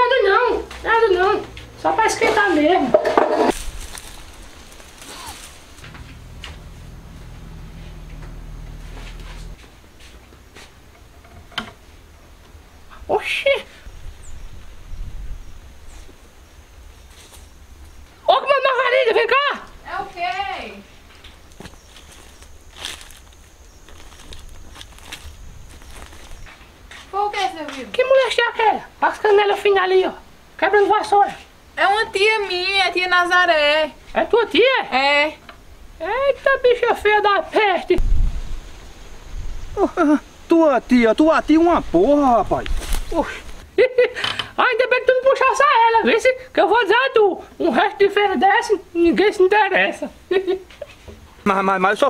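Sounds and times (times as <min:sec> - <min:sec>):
rustle: 0:00.3 - 0:44.7, 0:47.4 - 0:52.0
footsteps on ground: 0:00.7 - 0:10.8, 0:21.1 - 0:27.9, 0:42.4 - 0:43.7
low outdoor rumble: 0:03.5 - 0:15.9, 0:19.6 - 0:26.9
faint high whine: 0:03.6 - 0:09.6
low steady hum: 0:03.6 - 0:09.9
person speaking: 0:04.9 - 0:09.6.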